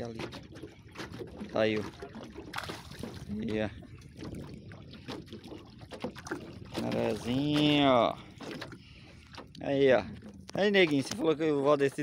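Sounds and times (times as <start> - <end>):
fish splashing at surface: 0.5 - 3.4
knocks on boat: 5.2 - 8.7.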